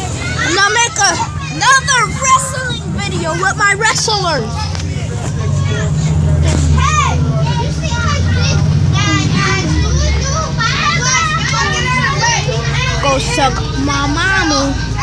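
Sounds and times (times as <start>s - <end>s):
bus rumbling: 0.0s - 15.0s
children chattering and squealing: 0.0s - 15.0s.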